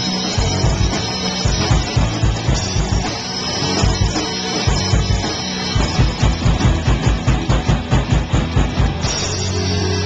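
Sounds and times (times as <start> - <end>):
bass guitar: 0.0 - 10.0
distorted electric guitars: 0.0 - 10.0
drum kit hammering fast: 0.0 - 10.0.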